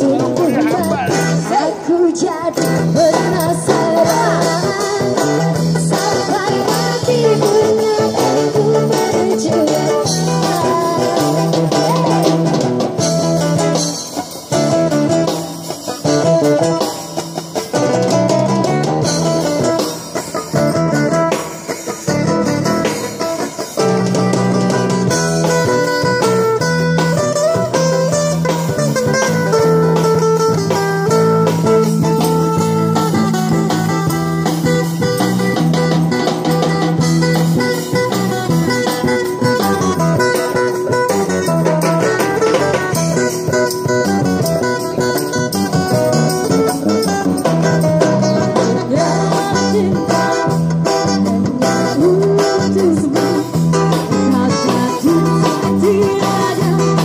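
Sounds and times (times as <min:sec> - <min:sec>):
bass line: 0:00.0 - 0:01.5
drum kit: 0:00.0 - 0:57.0
guitar melody: 0:00.0 - 0:57.0.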